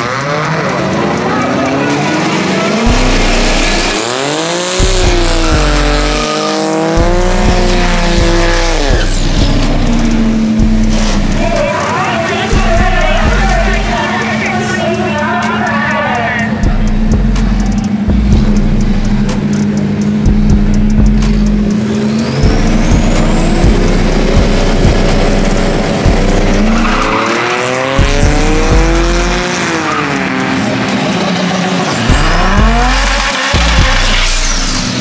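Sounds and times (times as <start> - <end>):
car engine revving: 0.0 - 35.0
music with heavy bass line: 0.0 - 35.0.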